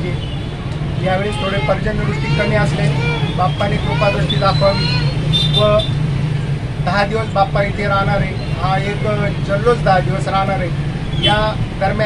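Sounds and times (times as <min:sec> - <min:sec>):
man speaking: 0:00.0 - 0:00.2, 0:01.0 - 0:05.9, 0:06.8 - 0:12.0.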